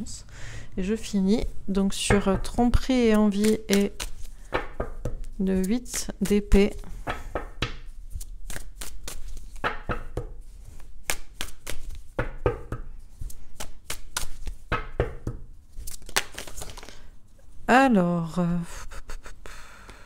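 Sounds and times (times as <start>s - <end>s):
cards being shuffled: 2.2s - 17.1s.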